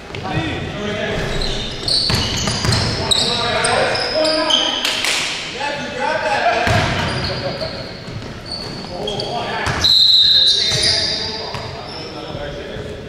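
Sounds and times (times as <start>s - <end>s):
sneaker squeaks: 1.2s - 5.1s, 6.6s - 12.4s
players calling out: 1.2s - 12.1s
basketball bouncing: 1.8s - 3.2s, 6.6s - 7.2s.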